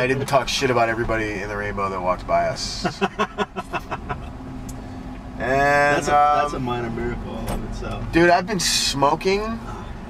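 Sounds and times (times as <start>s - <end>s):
car cabin hum: 0.0s - 10.0s
man laughing: 2.7s - 4.3s.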